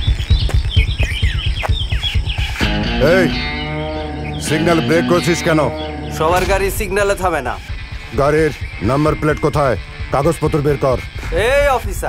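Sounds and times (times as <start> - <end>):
fast low drum beat: 0.0 - 12.0
held chord with wavering tone: 2.7 - 10.8
man speaking: 4.4 - 12.0.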